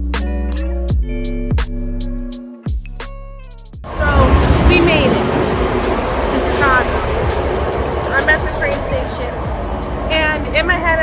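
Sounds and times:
train car rumble and hum: 3.8 - 11.0.

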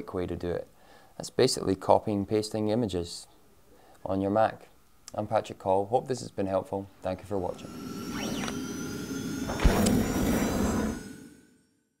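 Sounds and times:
sweeping whoosh: 7.2 - 11.7
ringing tones: 7.4 - 11.7.

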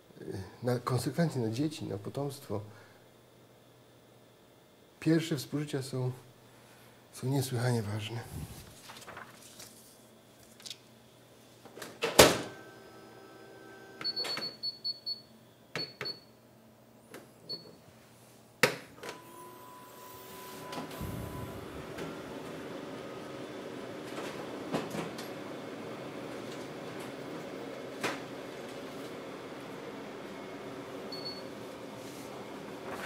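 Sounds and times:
photocopier whirring hum: 0.0 - 33.0.

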